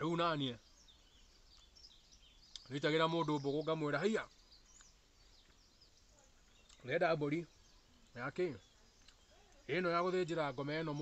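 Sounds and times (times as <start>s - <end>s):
faint high bird chirps: 0.0s - 11.0s.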